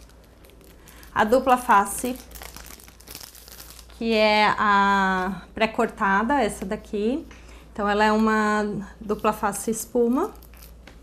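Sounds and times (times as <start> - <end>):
foam tape rustling and crinkling: 0.0 - 5.4, 9.1 - 11.0.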